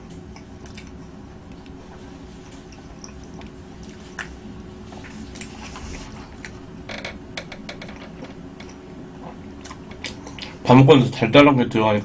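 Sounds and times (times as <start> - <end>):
person chewing cake: 0.0 - 6.7, 7.9 - 10.6.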